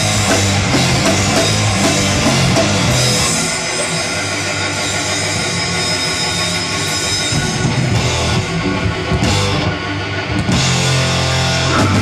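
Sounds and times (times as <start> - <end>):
distorted electric guitars droning: 0.0 - 12.0.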